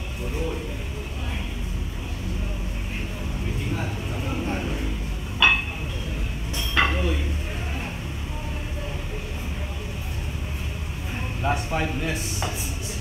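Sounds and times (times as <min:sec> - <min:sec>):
low rumble of gym: 0:00.0 - 0:13.0
gym weights clinking: 0:05.4 - 0:07.2.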